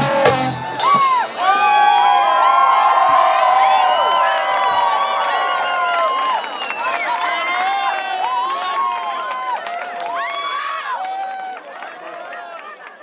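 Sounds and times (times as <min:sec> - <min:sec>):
live band with percussion and bass: 0:00.0 - 0:01.8
crowd cheering and whooping: 0:00.0 - 0:13.0.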